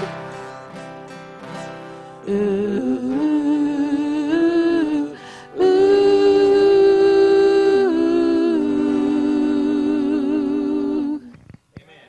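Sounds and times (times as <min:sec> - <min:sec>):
two voices singing in harmony: 0:02.2 - 0:11.4.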